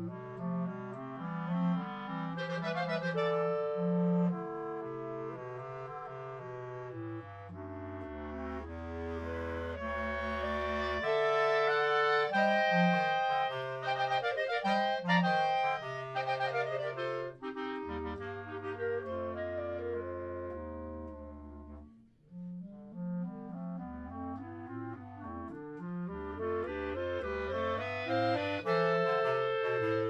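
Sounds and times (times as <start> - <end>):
clarinet quartet playing: 0.0 - 30.0.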